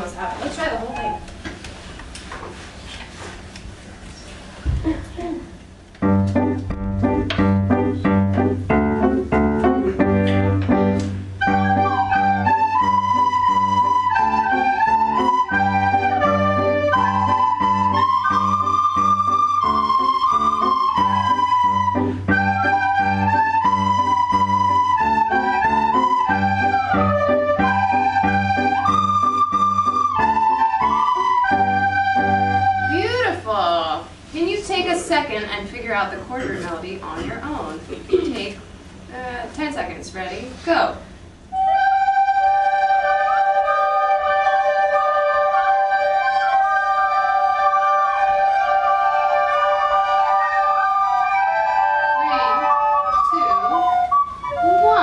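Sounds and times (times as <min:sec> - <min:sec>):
recorders playing melody: 0:06.0 - 0:33.2, 0:41.5 - 0:55.0.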